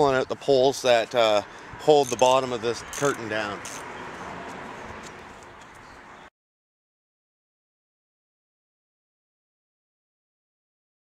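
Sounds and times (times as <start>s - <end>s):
steady outdoor hiss: 0.0s - 6.2s.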